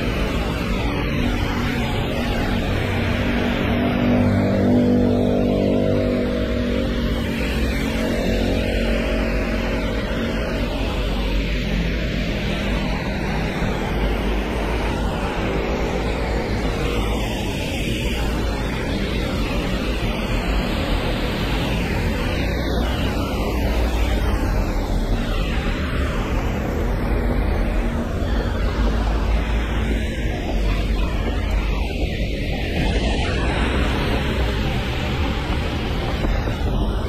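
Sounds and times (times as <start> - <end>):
vehicle engine hum: 0.0 - 37.0
rain hiss on wet street: 6.1 - 37.0.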